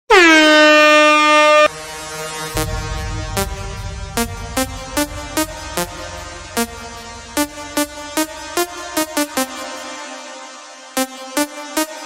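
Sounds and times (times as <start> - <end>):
air horn blast: 0.1 - 9.8
electronic music: 1.5 - 12.0.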